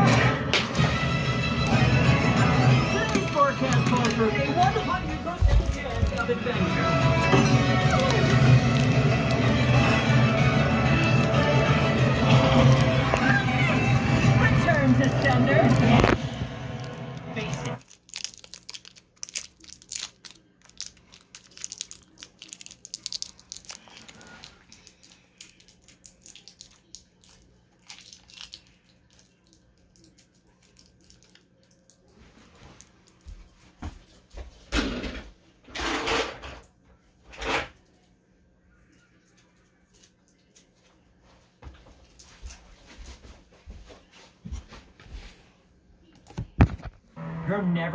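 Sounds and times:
film soundtrack music: 0:00.0 - 0:17.8
crackling rustles and clicks: 0:07.8 - 0:09.8, 0:14.6 - 0:33.3
voices: 0:12.3 - 0:16.1.

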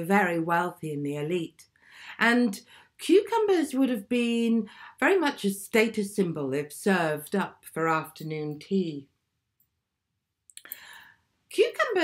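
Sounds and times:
short breath in: 0:10.6 - 0:11.3.

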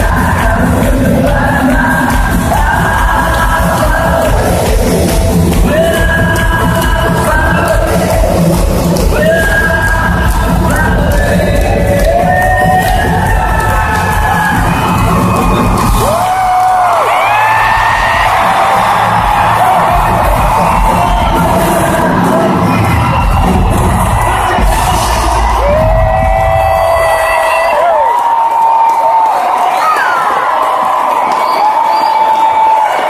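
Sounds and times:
live band playing loud: 0:00.0 - 0:27.9
crowd cheering and screaming: 0:00.0 - 0:33.0.

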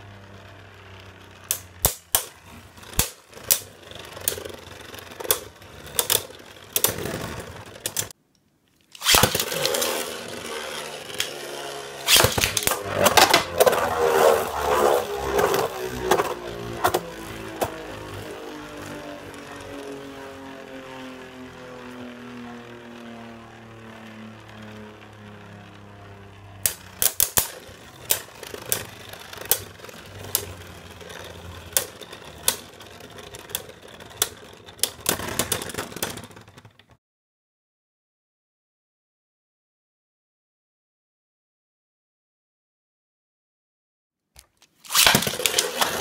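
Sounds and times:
spinning tops whirring: 0:00.0 - 0:08.2, 0:08.9 - 0:36.9, 0:44.7 - 0:46.0
spinning tops clashing: 0:09.0 - 0:17.0.

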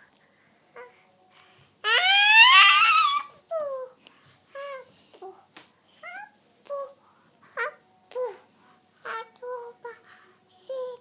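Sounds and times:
toddler squealing: 0:01.8 - 0:03.8.

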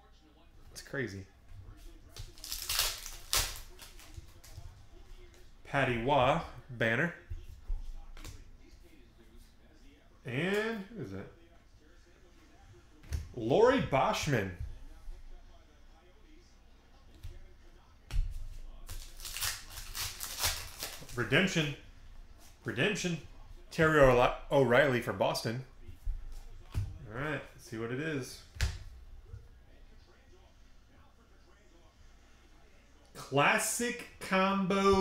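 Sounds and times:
foil wrapper crinkling and tearing: 0:02.3 - 0:04.1, 0:18.9 - 0:21.2
cards rustling on a table: 0:18.3 - 0:21.3.

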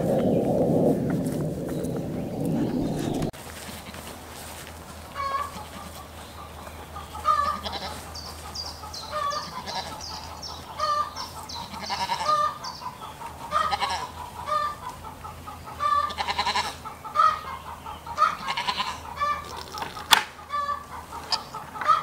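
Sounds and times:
farmyard animals calling: 0:01.9 - 0:22.0.

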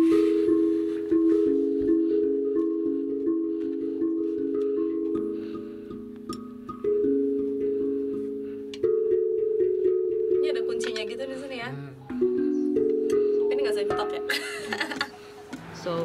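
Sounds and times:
steel tongue drum notes: 0:00.0 - 0:15.3.

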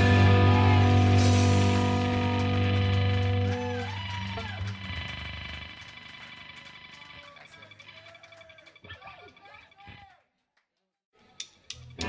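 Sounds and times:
electric guitar and bass chord ringing: 0:00.0 - 0:06.6.

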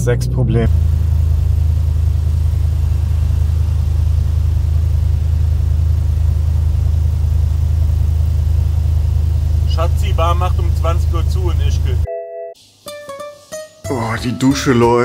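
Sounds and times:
car engine idling: 0:00.0 - 0:12.1.

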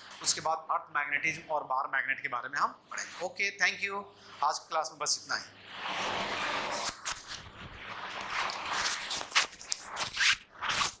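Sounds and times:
scraping rustling noises: 0:05.6 - 0:11.0.

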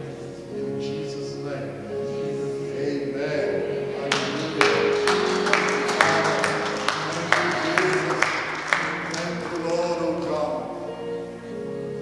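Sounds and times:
soft worship music: 0:00.0 - 0:12.0
hand claps in rhythm: 0:04.1 - 0:10.5.

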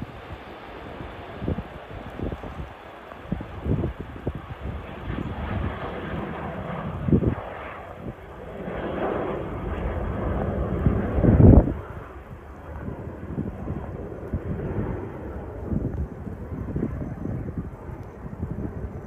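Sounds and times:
turboprop airplane rumble: 0:00.0 - 0:19.0
wind buffeting microphone: 0:00.0 - 0:19.0.

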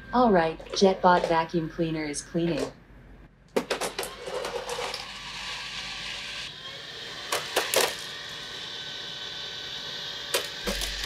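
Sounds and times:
robot vacuum motor whir: 0:03.9 - 0:11.0.

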